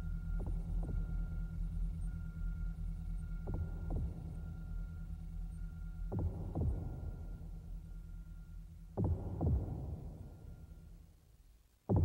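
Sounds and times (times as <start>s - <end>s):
low electronic hum: 0.0s - 12.0s
heartbeat thumps: 0.3s - 1.3s, 3.3s - 4.5s, 6.0s - 7.6s, 8.9s - 10.6s.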